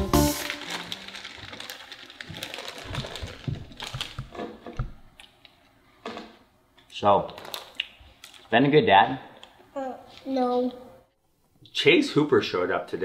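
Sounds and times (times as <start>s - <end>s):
crisps crunching: 0.1s - 4.4s, 7.2s - 8.5s
plastic bag crinkling: 0.2s - 4.5s, 7.3s - 8.5s.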